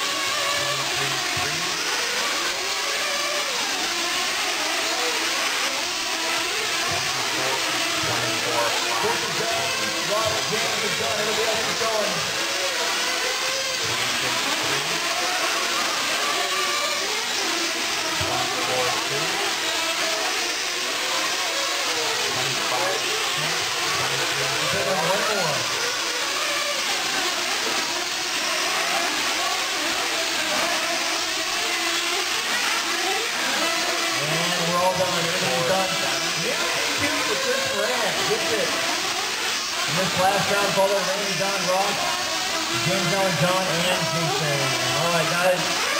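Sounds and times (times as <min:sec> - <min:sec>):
rc car engines whining: 0:00.0 - 0:45.9.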